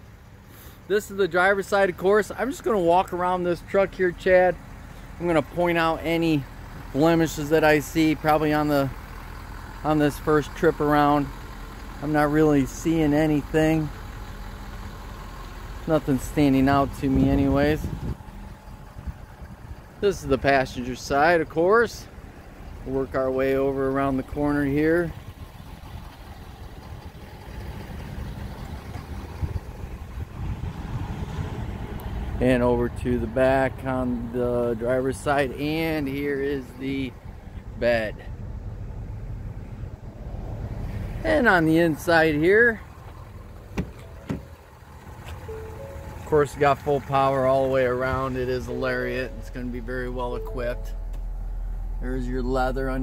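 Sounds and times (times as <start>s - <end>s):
low uneven vehicle rumble: 0.0s - 53.0s
outdoor background noise: 0.0s - 53.0s
car door latch clicking: 43.7s - 44.5s.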